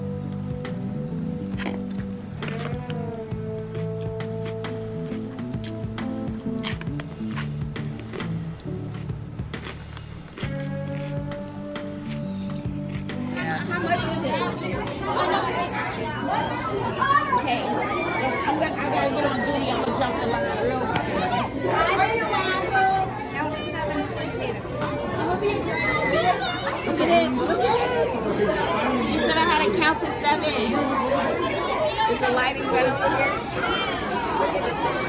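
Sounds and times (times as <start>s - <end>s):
chatter of many voices: 0.0s - 7.5s, 10.3s - 35.0s.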